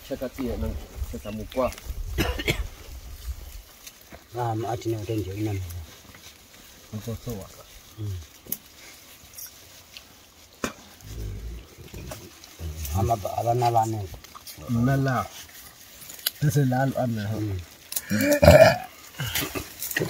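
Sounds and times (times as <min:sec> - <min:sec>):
leafy branches rustling: 0:00.0 - 0:20.0
twigs snapping: 0:15.4 - 0:16.6.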